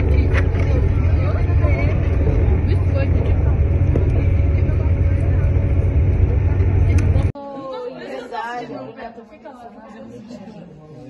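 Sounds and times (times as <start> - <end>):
vehicle engine and road noise: 0.0 - 7.4.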